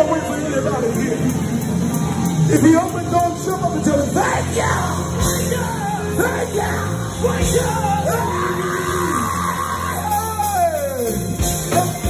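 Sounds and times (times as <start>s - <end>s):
steady bass: 0.0s - 12.0s
men singing and shouting: 2.4s - 12.0s.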